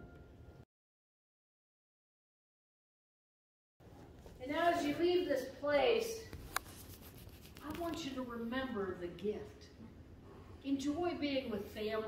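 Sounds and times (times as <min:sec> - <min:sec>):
woman speaking: 0:04.4 - 0:06.3, 0:07.6 - 0:09.8, 0:10.6 - 0:12.0.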